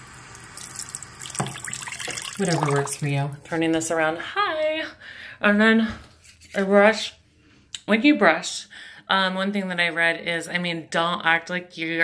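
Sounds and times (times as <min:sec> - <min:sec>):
tap water running into sink: 0:00.0 - 0:03.2.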